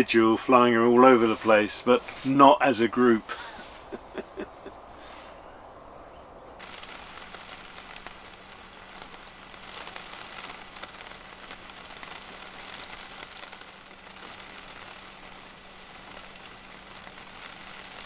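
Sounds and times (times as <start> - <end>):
rain falling on water: 0.1 - 4.8, 6.6 - 18.0.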